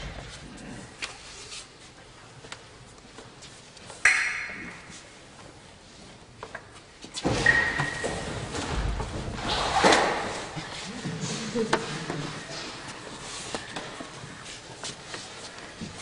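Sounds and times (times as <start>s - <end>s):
sharp ringing knock: 4.1s - 4.8s
voices echoing in hall: 10.4s - 14.6s.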